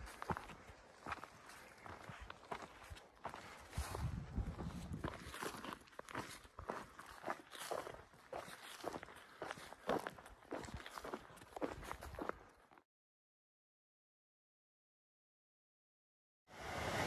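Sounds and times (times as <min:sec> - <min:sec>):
footsteps on grass: 0:00.0 - 0:12.6.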